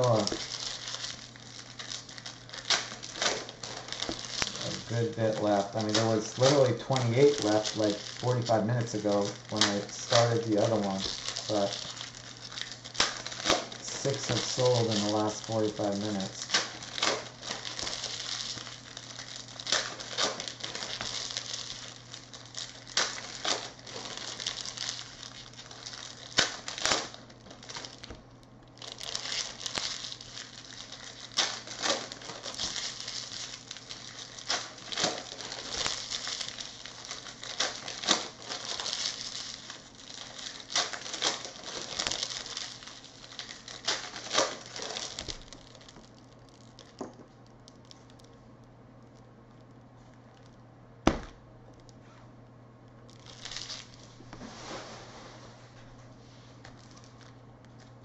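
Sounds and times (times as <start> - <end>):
foil wrappers crinkling: 0.0 - 51.9, 53.0 - 58.0.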